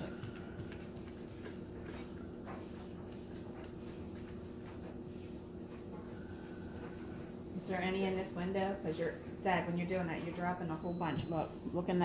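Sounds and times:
paint roller and brush rubbing: 0:00.0 - 0:10.6
steady low hum: 0:00.0 - 0:12.0.

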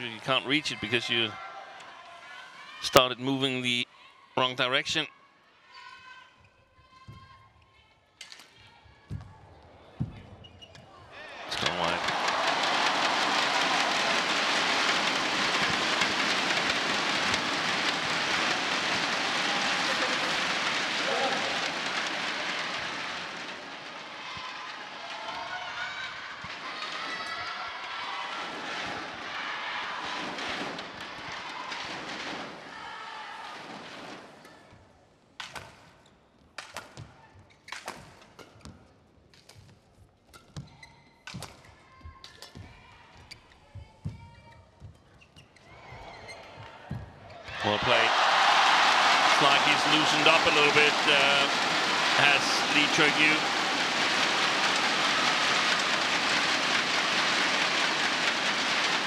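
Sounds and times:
scattered shouts: 0:11.2 - 0:30.5, 0:47.5 - 0:56.6
crowd cheering and applauding: 0:11.4 - 0:26.8, 0:47.6 - 0:59.0.

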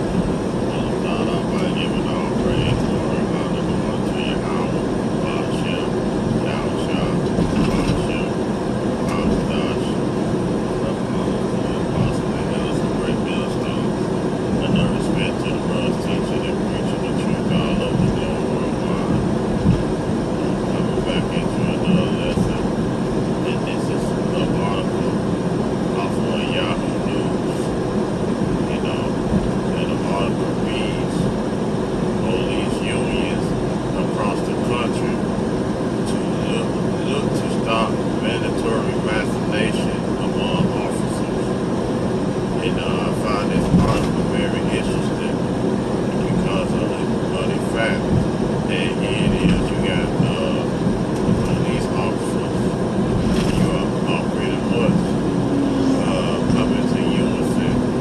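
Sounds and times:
road and engine noise: 0:00.0 - 0:58.0
muffled voice: 0:00.6 - 0:10.1, 0:10.7 - 0:19.5, 0:20.4 - 0:22.8, 0:23.4 - 0:25.3, 0:25.9 - 0:27.8, 0:28.6 - 0:31.4, 0:32.2 - 0:35.3, 0:36.0 - 0:41.6, 0:42.6 - 0:45.5, 0:46.1 - 0:48.1, 0:48.7 - 0:52.7, 0:53.3 - 0:58.0.

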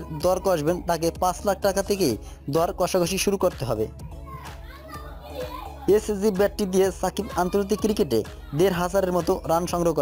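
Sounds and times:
background music: 0:00.0 - 0:10.0
children's voices: 0:04.1 - 0:09.0.

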